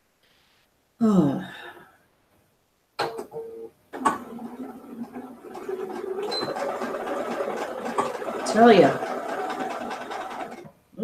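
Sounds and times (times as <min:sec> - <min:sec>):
sewing machine running: 0:04.0 - 0:10.7.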